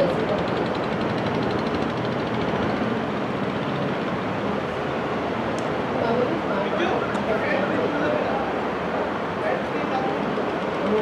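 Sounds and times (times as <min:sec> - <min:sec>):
steady rushing noise: 0:00.0 - 0:11.0
faint voices calling out: 0:06.0 - 0:11.0.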